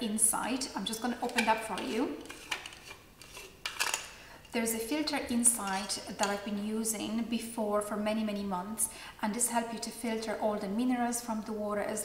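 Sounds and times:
plastic parts clicking and scraping: 0:01.2 - 0:04.1.

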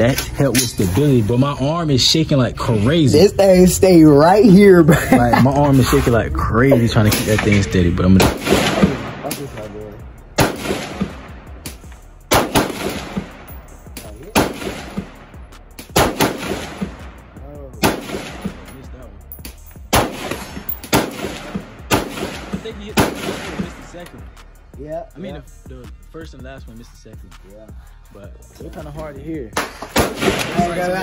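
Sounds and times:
rifle shots: 0:08.2 - 0:09.7, 0:10.4 - 0:17.2, 0:17.8 - 0:18.7, 0:19.9 - 0:23.9, 0:29.6 - 0:31.0.

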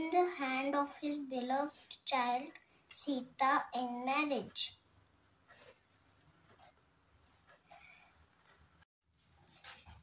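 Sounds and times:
soft rustle of phone over book: 0:05.4 - 0:10.0.

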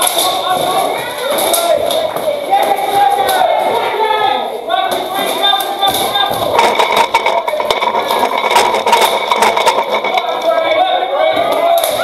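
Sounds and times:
crowd and fighters shouting: 0:00.0 - 0:06.6, 0:10.5 - 0:12.0.

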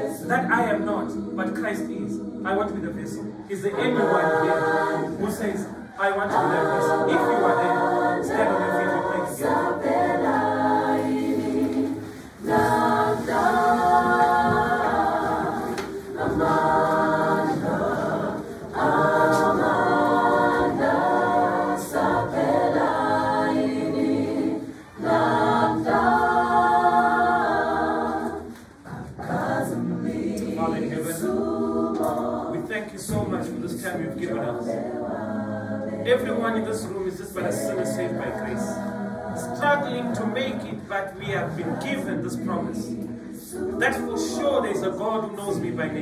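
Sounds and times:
mixed choir singing in harmony: 0:00.0 - 0:46.0.

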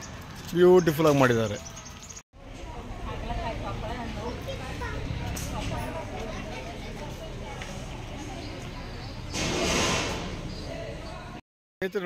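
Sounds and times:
murmur of people talking: 0:02.4 - 0:11.4
loud rushing noise: 0:09.3 - 0:10.5.

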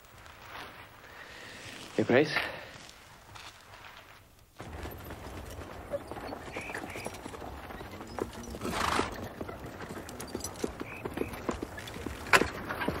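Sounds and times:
horse hooves clip-clopping: 0:03.4 - 0:13.0.

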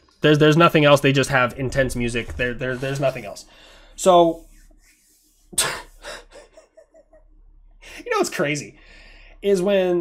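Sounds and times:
soft breathing: 0:02.6 - 0:06.6, 0:08.7 - 0:09.5
man chuckling: 0:05.6 - 0:08.0.

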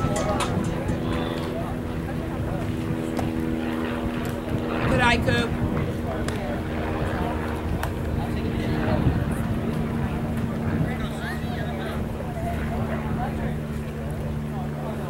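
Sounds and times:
low mechanical drone: 0:00.0 - 0:15.0
spectators' voices: 0:00.0 - 0:15.0.

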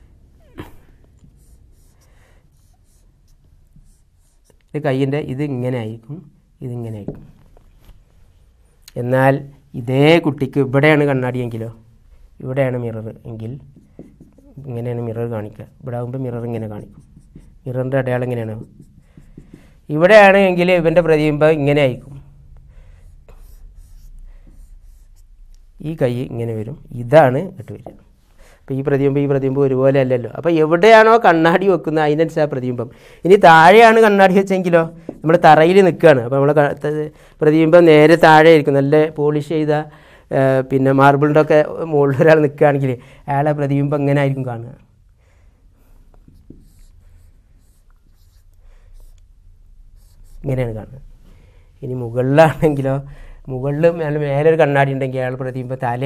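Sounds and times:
marker pen on whiteboard: 0:00.0 - 0:05.6, 0:06.9 - 0:08.8, 0:12.7 - 0:28.2, 0:33.3 - 0:38.4, 0:45.8 - 0:51.0
marker pen squeaking on whiteboard: 0:00.4 - 0:04.7, 0:13.6 - 0:14.7, 0:16.6 - 0:19.7.

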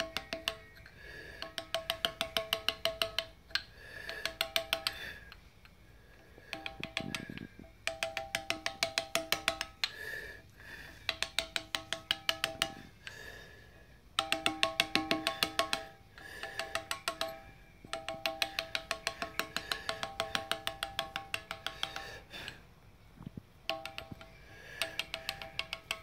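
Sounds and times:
mallet tapping chisel into stone: 0:00.0 - 0:05.4, 0:06.5 - 0:10.0, 0:11.0 - 0:13.1, 0:14.2 - 0:22.2, 0:23.6 - 0:26.0.

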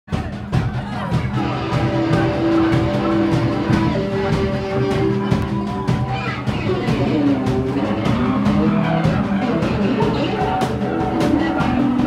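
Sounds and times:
live rock band playing: 0:00.1 - 0:12.0.

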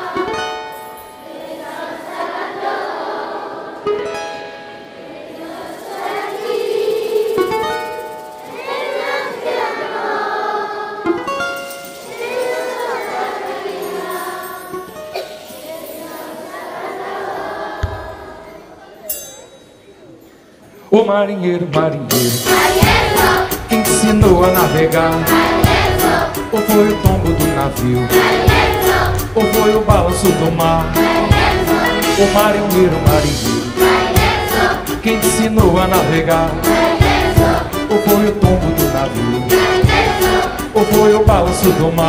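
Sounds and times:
acoustic guitar playing: 0:00.0 - 0:09.8, 0:10.9 - 0:13.8, 0:22.1 - 0:42.0
live band music: 0:22.0 - 0:42.0.

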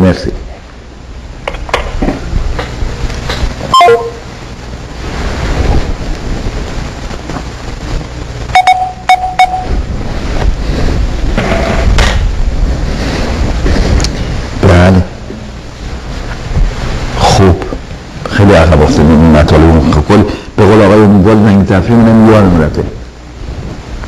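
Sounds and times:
telephone line hiss: 0:03.7 - 0:04.3, 0:08.5 - 0:09.8
phone key beeps: 0:08.6 - 0:09.7.

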